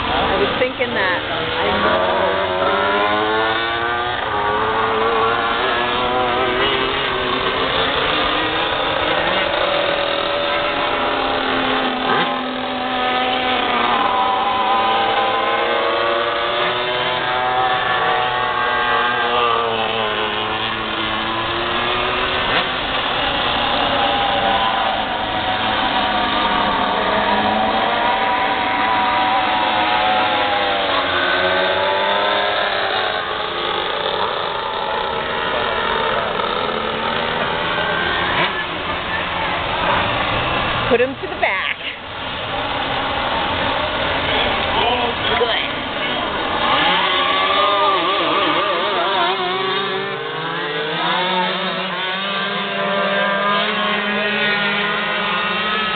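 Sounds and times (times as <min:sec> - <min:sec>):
kart engines racing: 0:00.0 - 0:55.9.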